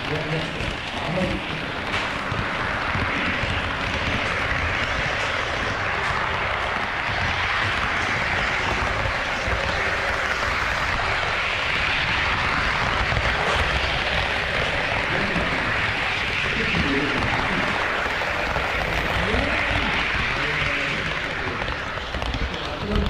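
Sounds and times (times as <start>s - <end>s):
model train rolling on track: 0.0s - 23.0s.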